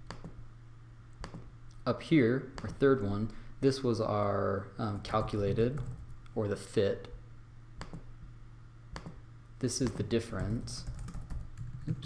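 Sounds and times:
computer mouse clicks: 0:00.0 - 0:00.4, 0:01.2 - 0:01.8, 0:07.8 - 0:08.1, 0:09.0 - 0:09.2
faint low hum: 0:00.0 - 0:12.0.

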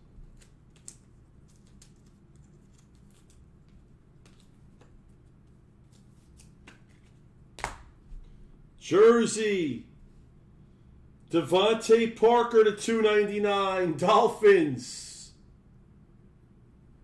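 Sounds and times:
low room hum: 0:00.0 - 0:17.0.

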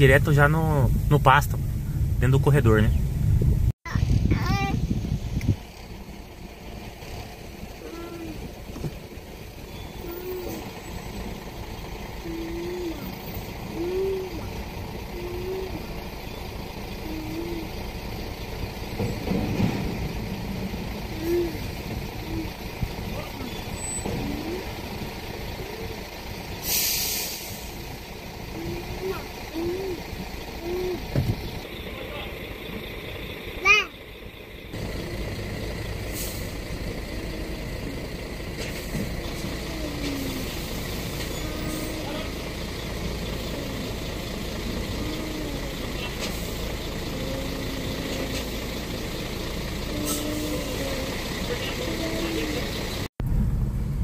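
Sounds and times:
diesel truck idling: 0:00.0 - 0:54.0
air brakes hissing: 0:26.4 - 0:28.0, 0:36.0 - 0:37.0, 0:38.5 - 0:43.6, 0:45.8 - 0:47.0, 0:47.6 - 0:51.4.

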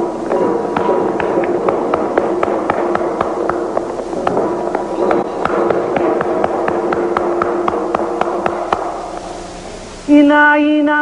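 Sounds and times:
hand drums struck: 0:00.0 - 0:09.4
steady ringing tone: 0:00.0 - 0:10.2.

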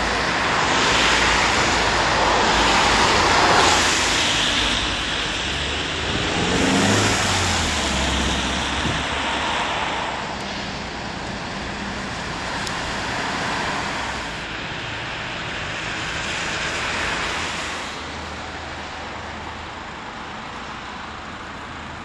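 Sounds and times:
cars driving past on wet road: 0:00.0 - 0:22.0
vehicle engine passing: 0:02.7 - 0:14.4.

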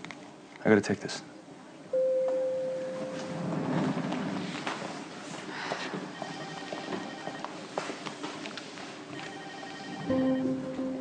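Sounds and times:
electronic telephone ring: 0:06.1 - 0:07.5, 0:09.2 - 0:11.0.

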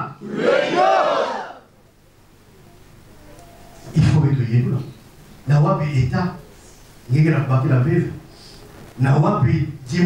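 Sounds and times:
faint room noise: 0:00.0 - 0:10.0
man speaking into a microphone: 0:03.9 - 0:06.5, 0:07.1 - 0:08.3, 0:09.0 - 0:10.0.

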